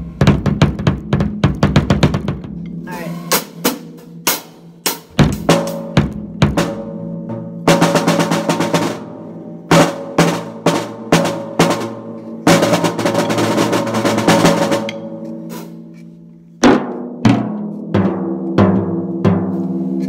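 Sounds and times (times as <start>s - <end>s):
drum kit played with sticks: 0.0s - 20.0s.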